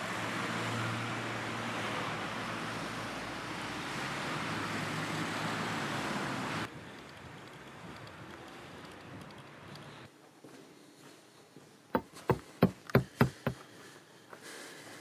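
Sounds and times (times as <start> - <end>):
hiss of passing cars: 0.0 - 10.1.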